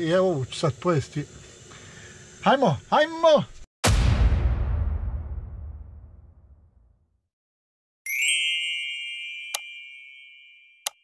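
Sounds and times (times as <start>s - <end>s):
bright chime ringing: 8.1s - 11.0s.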